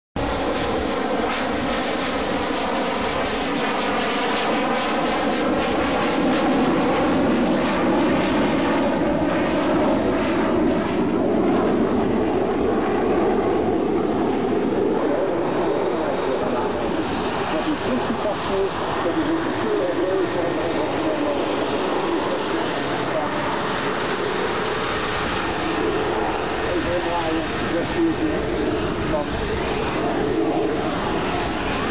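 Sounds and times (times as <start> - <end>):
jet engines running: 0.2 - 31.9.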